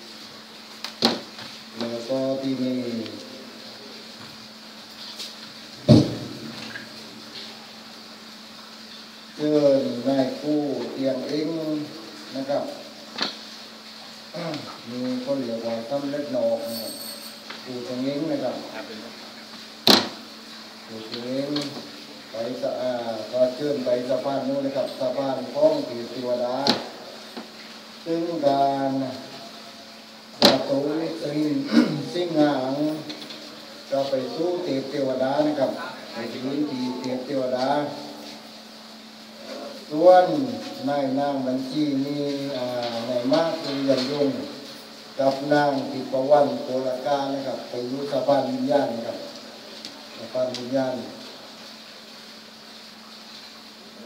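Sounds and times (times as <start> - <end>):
faint hum: 0.0 - 54.0
high steady buzz: 0.0 - 54.0
man speaking: 1.8 - 3.4, 9.4 - 12.9, 14.3 - 16.9, 17.6 - 19.5, 20.9 - 27.0, 28.0 - 29.4, 30.4 - 33.2, 33.9 - 38.2, 39.4 - 44.6, 45.2 - 49.4, 50.2 - 51.2
man's voice over pa system: 33.9 - 38.2.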